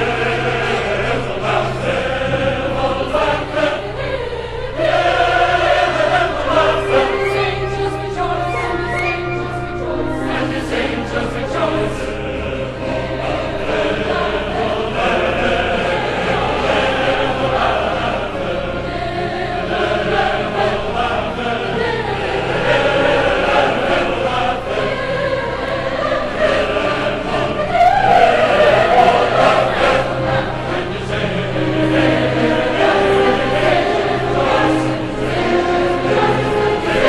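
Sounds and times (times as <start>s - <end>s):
choir singing with orchestra: 0.0s - 37.0s.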